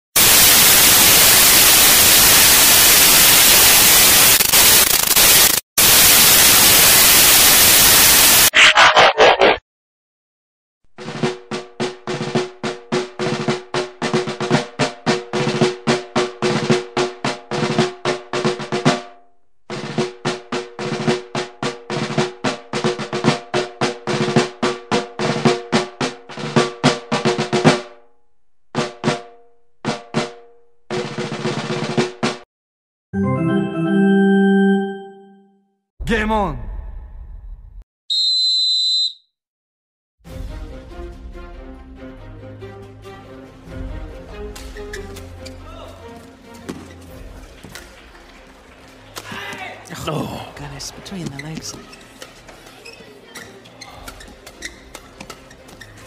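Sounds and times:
drum-led music track: 0:11.0 - 0:19.1, 0:19.7 - 0:27.9, 0:28.8 - 0:29.3, 0:29.9 - 0:32.4, 0:40.3 - 0:48.1.

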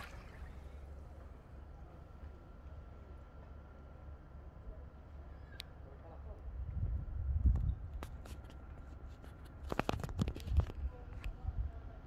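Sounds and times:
water splashing and lapping: 0:00.0 - 0:01.1
low steady rumble: 0:00.0 - 0:08.0.

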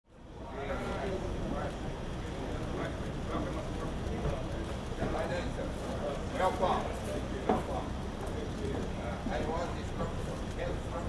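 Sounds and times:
people talking indistinctly: 0:00.4 - 0:11.0.

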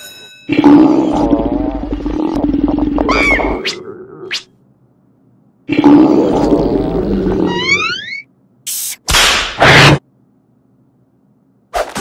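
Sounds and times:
cartoon stomach growl: 0:00.5 - 0:04.5, 0:05.7 - 0:08.1.

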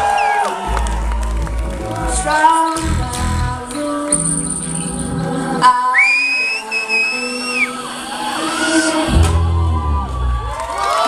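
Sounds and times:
band music: 0:00.0 - 0:10.6
person whistling: 0:05.8 - 0:07.8.

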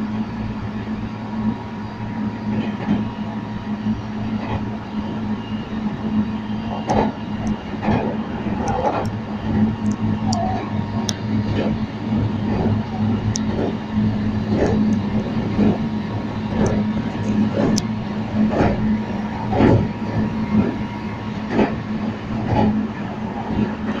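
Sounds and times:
electric train low hum: 0:00.0 - 0:24.0
wheels clacking over rail joints: 0:02.4 - 0:24.0.

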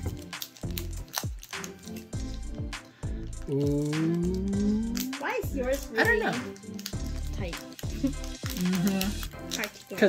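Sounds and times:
plastic wrapper crinkling: 0:00.0 - 0:02.6, 0:03.2 - 0:10.0
background music: 0:00.0 - 0:10.0.

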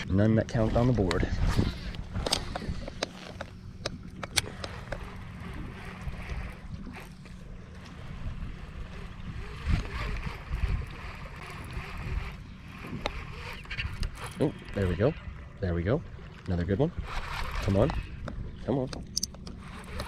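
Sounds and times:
small waves lapping at kayak: 0:00.0 - 0:20.0
wind rumbling on microphone: 0:00.0 - 0:20.0
fishing gear clicks: 0:01.8 - 0:08.1, 0:17.1 - 0:20.0.

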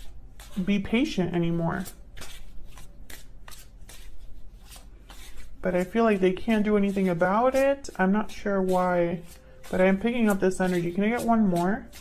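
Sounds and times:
cards shuffling: 0:01.8 - 0:05.9.

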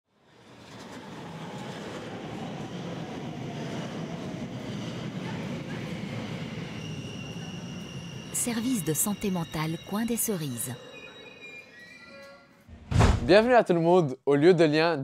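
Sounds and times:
train rumbling on rails: 0:00.1 - 0:11.2.

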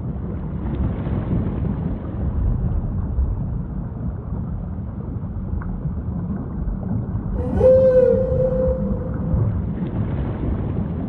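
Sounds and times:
low rumble of ocean noise: 0:00.0 - 0:11.0
whale call moan: 0:07.4 - 0:09.8.

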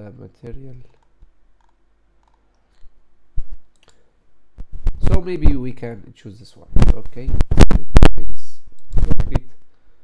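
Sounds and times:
computer mouse clicking: 0:00.9 - 0:02.9.

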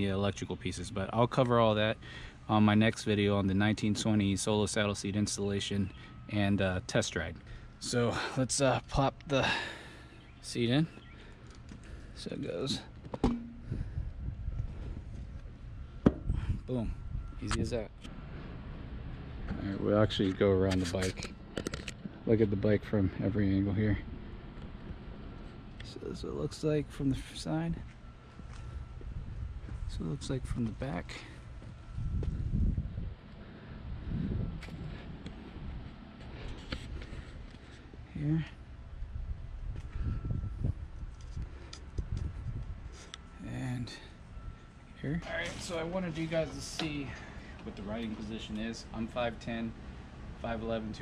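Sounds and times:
wind rumble on microphone: 0:13.6 - 0:18.3, 0:28.7 - 0:30.6, 0:31.7 - 0:36.0, 0:39.0 - 0:43.0.

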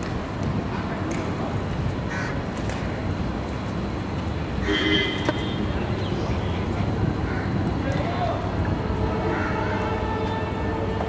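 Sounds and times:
traffic rumble: 0:00.0 - 0:11.0
crow cawing: 0:02.1 - 0:02.4, 0:07.2 - 0:07.6, 0:09.3 - 0:09.8.

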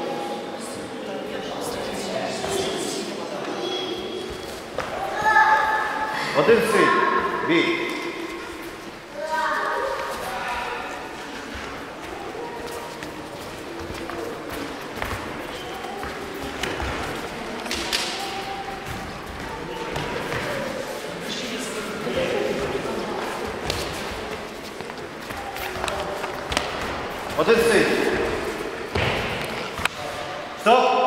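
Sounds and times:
faint voices: 0:00.0 - 0:30.7.

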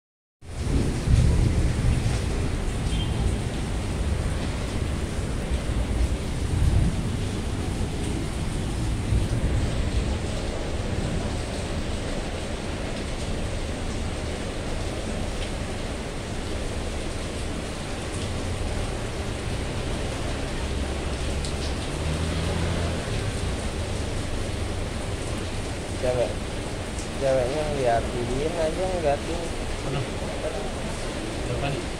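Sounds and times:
heavy rain hissing: 0:00.5 - 0:31.9.

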